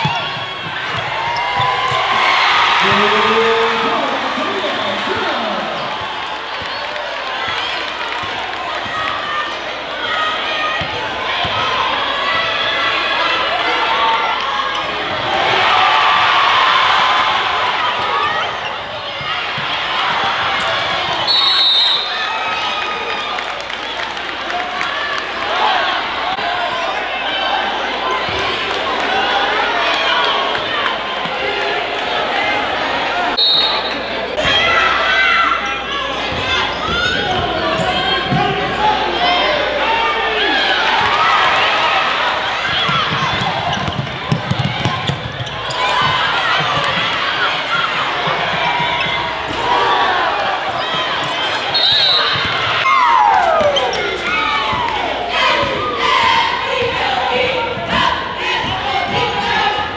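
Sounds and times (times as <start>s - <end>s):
hum of spectators' voices: 0.0s - 59.9s.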